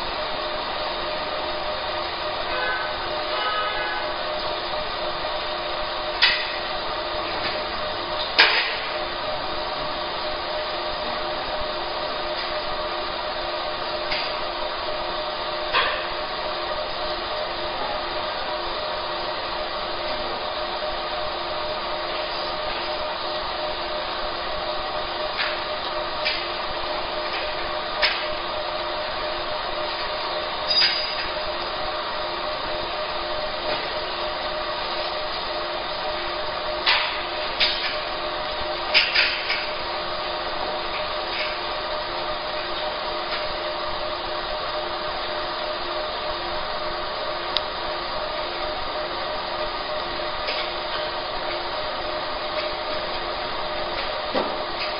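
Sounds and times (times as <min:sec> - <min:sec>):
laser marking machine hum: 0:00.0 - 0:54.9.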